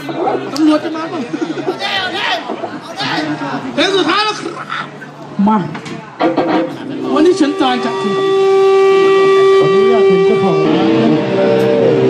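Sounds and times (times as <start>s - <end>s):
electric guitar sustained tone: 6.2s - 12.0s.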